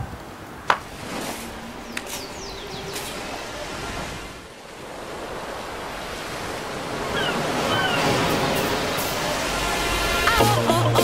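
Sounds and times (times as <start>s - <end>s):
steady rushing noise: 0.0s - 10.8s.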